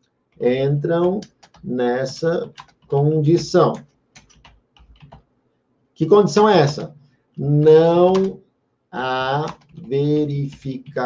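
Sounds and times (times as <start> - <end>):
computer keyboard typing: 0.3 - 5.3, 8.0 - 8.4, 9.3 - 11.0.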